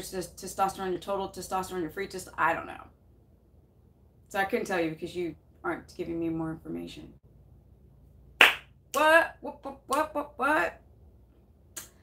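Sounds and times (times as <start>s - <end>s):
hand clap: 8.4s - 9.1s.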